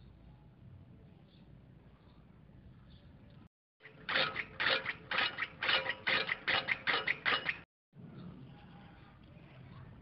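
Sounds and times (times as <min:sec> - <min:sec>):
hand-cranked gears clicking: 0:03.8 - 0:07.7.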